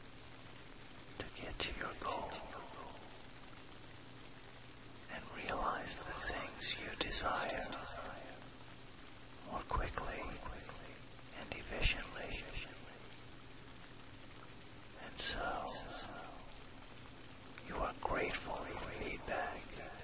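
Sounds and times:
rain: 0.0s - 20.0s
person whispering: 1.2s - 3.2s, 5.0s - 8.5s, 9.4s - 13.2s, 15.0s - 16.7s, 17.6s - 20.0s
faint low steady tone: 1.2s - 3.4s, 4.9s - 20.0s.

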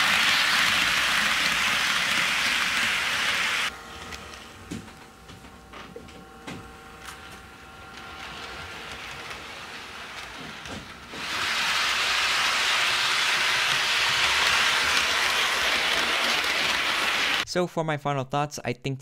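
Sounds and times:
model train rolling hiss: 0.0s - 3.7s, 8.1s - 17.4s.

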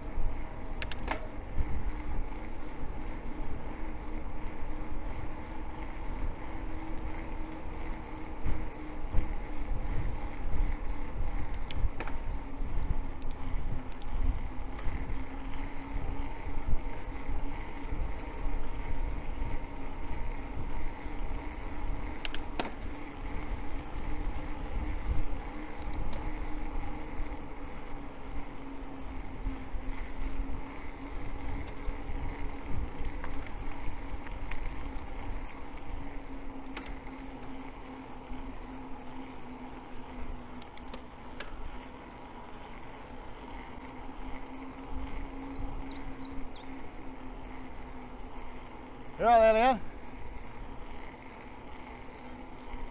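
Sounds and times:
wind rumble on microphone: 0.0s - 37.0s
electric bike motor whining: 0.0s - 52.9s.

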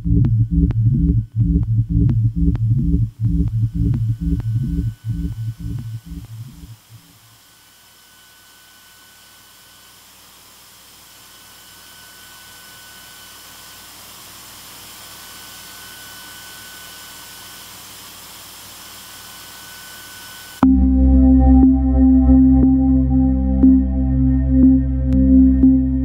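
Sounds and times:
throbbing low synth beat: 0.0s - 7.1s, 20.6s - 26.0s
synthesized white noise hiss: 0.0s - 26.0s.

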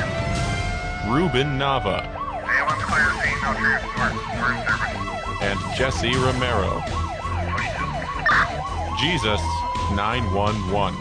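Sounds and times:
siren yelping: 0.0s - 11.0s.

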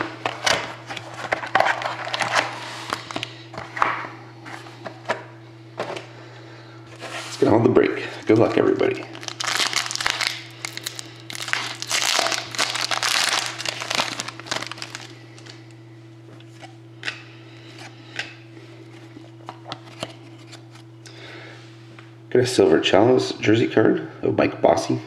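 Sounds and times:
steady low hum: 0.0s - 25.0s
foil pack tearing and crinkling: 8.2s - 15.6s.

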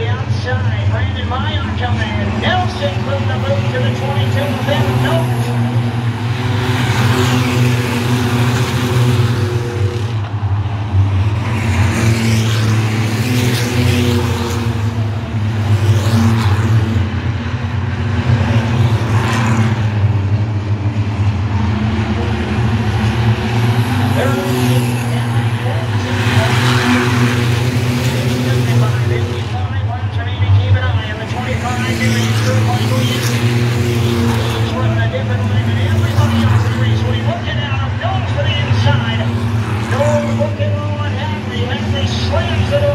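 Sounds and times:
race car engines droning: 0.0s - 42.9s.

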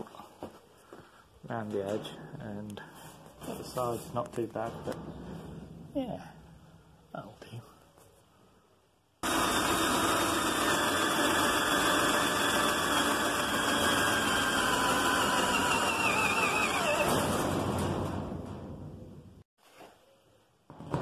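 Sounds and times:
cordless drill boring through steel: 9.2s - 17.5s.

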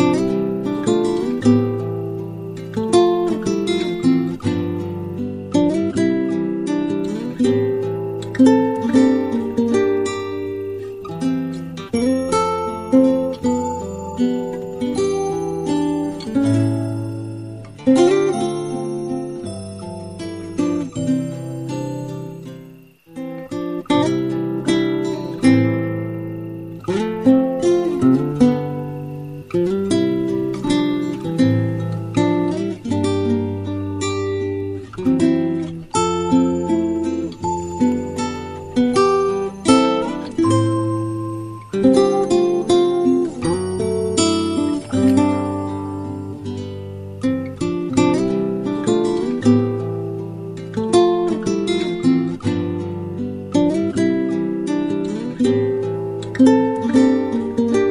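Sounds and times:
acoustic guitar plucked melody: 0.0s - 57.9s.

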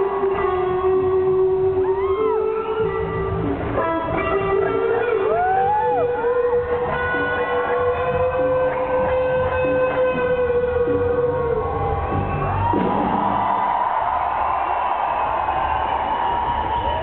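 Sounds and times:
electric guitar solo: 0.0s - 12.9s.

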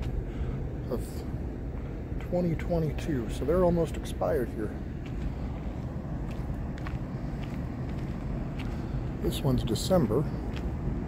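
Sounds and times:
faint footsteps on asphalt: 0.0s - 11.0s
low outdoor rumble: 0.0s - 11.0s.

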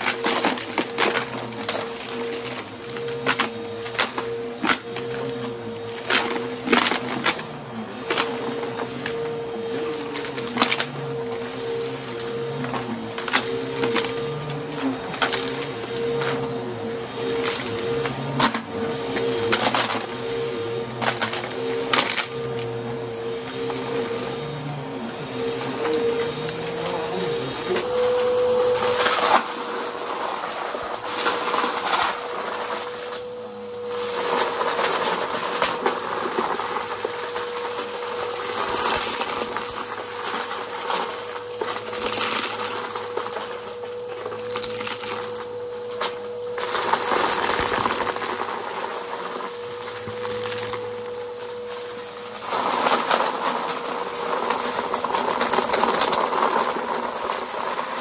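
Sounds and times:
vacuum cleaner whining: 0.0s - 58.0s.

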